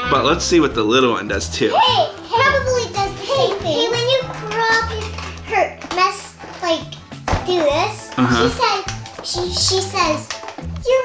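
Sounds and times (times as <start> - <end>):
background music: 0.0 - 11.0
child talking sing-song: 1.7 - 11.0.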